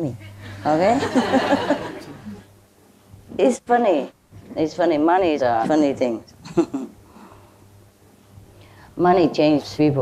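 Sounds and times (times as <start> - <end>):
low steady hum: 0.0 - 10.0
speech: 9.0 - 10.0.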